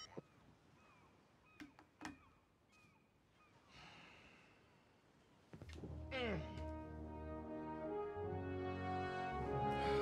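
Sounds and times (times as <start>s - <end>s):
faint bird chirps: 0.0s - 3.7s.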